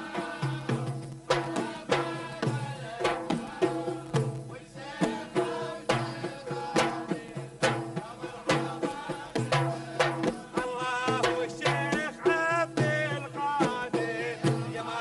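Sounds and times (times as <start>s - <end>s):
hand drums beating: 0.0s - 15.0s
men singing: 0.0s - 15.0s.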